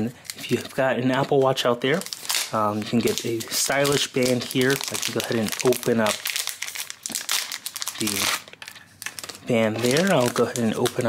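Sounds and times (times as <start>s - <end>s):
plastic pouch crinkling: 0.2s - 11.0s.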